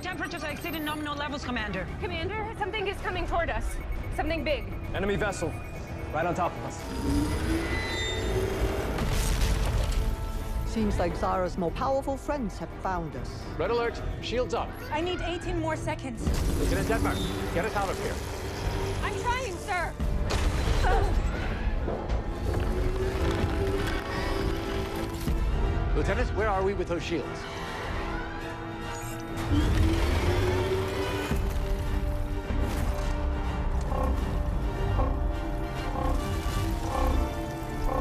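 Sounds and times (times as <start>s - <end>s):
tense film score: 0.0s - 38.0s.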